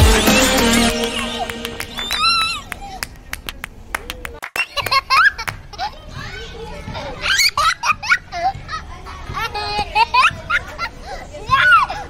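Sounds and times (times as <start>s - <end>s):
child laughing and squealing: 1.9s - 3.0s.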